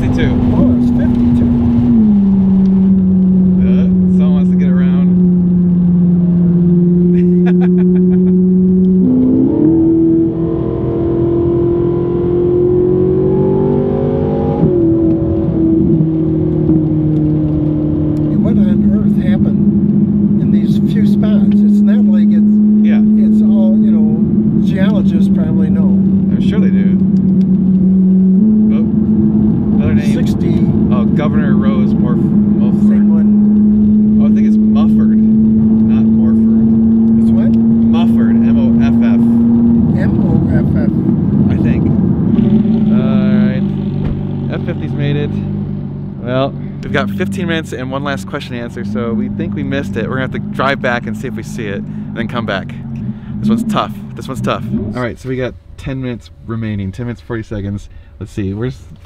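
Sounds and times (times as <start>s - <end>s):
car engine from inside cabin: 0.0s - 59.0s.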